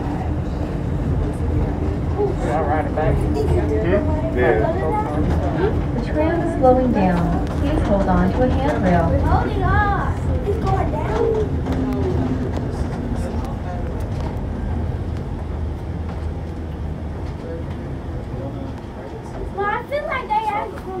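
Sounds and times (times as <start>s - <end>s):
tram running rumble: 0.0s - 21.0s
voices: 0.0s - 21.0s.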